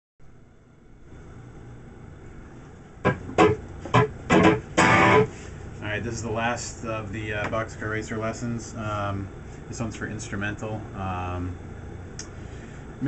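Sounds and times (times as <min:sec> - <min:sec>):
amplifier hiss: 0:01.0 - 0:13.0
electric guitar strummed chords: 0:03.0 - 0:05.4.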